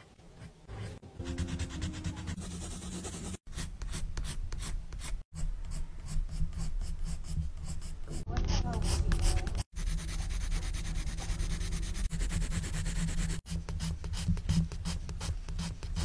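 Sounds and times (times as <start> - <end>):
pencil scratching on paper: 0.0 - 16.0.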